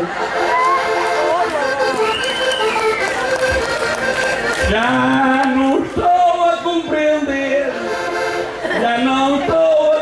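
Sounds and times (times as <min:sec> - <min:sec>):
crowd cheering: 0:00.0 - 0:05.7
button accordion playing: 0:00.0 - 0:10.0
crowd voices: 0:00.0 - 0:10.0.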